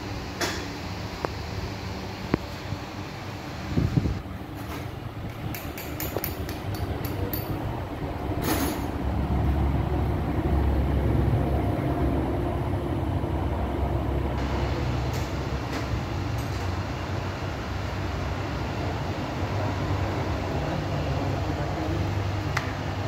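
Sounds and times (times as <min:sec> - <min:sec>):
petrol engine idling: 0:06.8 - 0:16.0.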